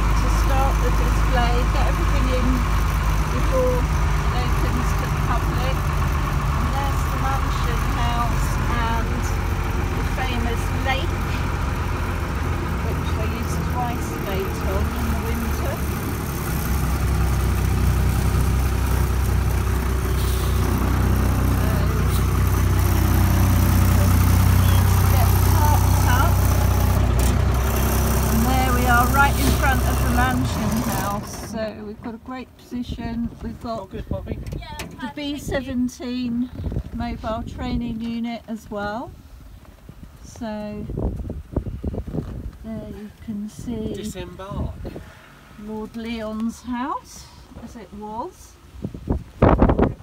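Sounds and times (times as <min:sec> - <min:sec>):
truck engine running: 0:00.0 - 0:50.0.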